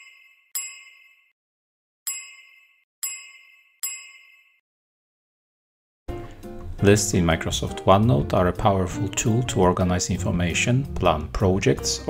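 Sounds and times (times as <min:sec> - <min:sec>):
bell-like dings: 0:00.0 - 0:01.4, 0:02.1 - 0:04.6.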